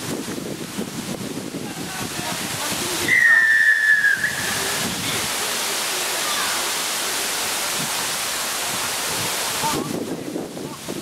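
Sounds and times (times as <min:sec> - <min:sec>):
wind hiss on microphone: 0:00.0 - 0:11.0.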